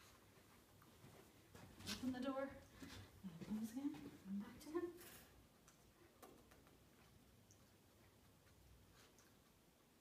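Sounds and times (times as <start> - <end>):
woman speaking softly: 2.0 - 2.6, 3.2 - 5.2.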